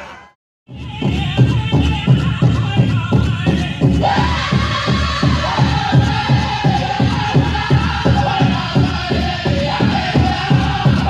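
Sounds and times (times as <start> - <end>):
high held vocal line: 0.0 - 11.0
big drum beating: 0.7 - 11.0
drum group singing: 0.7 - 11.0.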